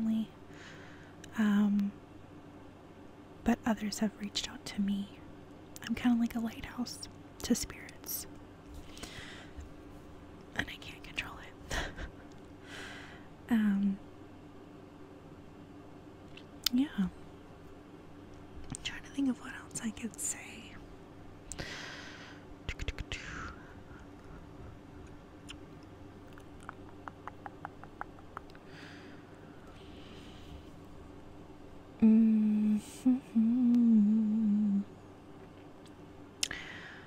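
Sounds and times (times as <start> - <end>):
person whispering: 6.4 - 8.2, 10.6 - 11.6, 18.8 - 20.8, 22.7 - 23.6
woman humming: 26.6 - 28.9, 32.0 - 35.0.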